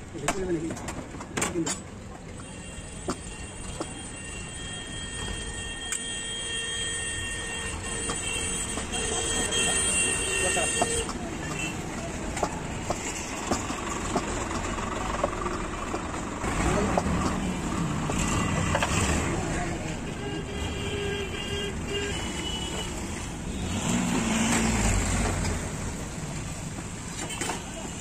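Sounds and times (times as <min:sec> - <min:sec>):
passing vehicles: 0:07.0 - 0:28.0.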